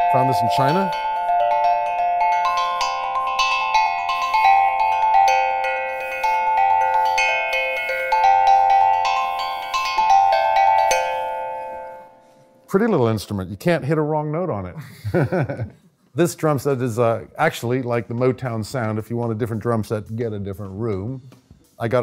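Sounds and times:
steel tongue drum ringing notes: 0.0s - 13.3s.

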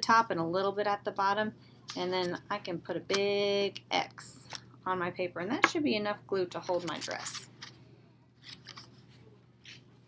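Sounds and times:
paper rustling in hand: 8.4s - 9.9s.

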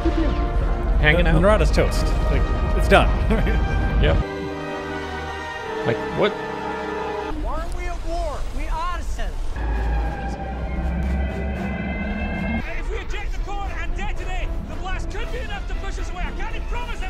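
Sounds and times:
sci-fi film music: 0.0s - 7.5s, 9.6s - 17.0s
deep rumble: 9.6s - 12.7s
swooping tones: 9.6s - 12.7s.

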